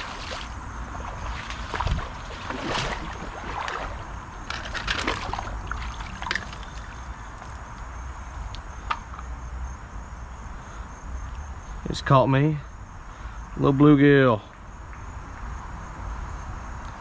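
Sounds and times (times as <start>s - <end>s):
crickets trilling: 0.0s - 17.0s.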